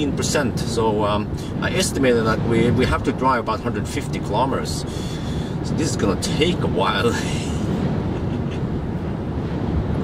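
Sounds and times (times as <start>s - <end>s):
car road and wind noise: 0.0s - 10.0s.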